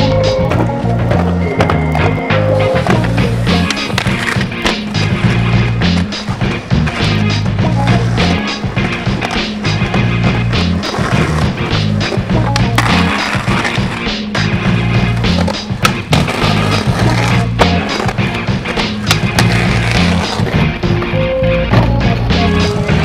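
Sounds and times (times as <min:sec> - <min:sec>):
skateboard clacking on ground: 0:00.0 - 0:21.1
music with bass line: 0:00.0 - 0:23.0
skateboard wheels rolling on concrete: 0:00.0 - 0:23.0.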